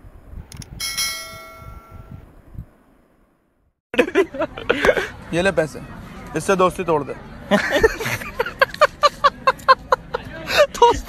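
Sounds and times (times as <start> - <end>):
notification bell chime: 0.8 - 2.2.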